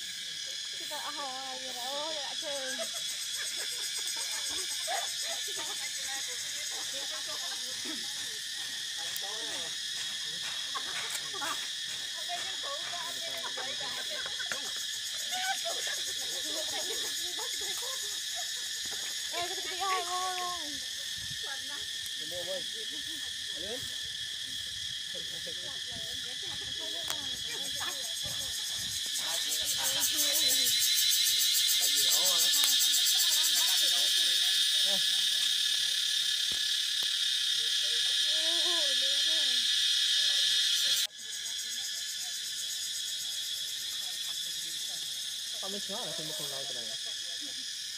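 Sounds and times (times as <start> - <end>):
high-pitched insect chorus: 0.0 - 47.9
people talking quietly: 0.0 - 47.9.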